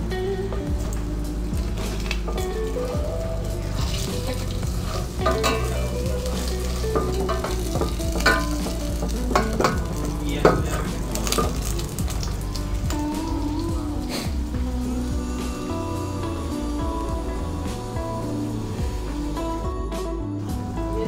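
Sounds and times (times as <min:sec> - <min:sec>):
food sizzling in a pot: 0:00.0 - 0:21.0.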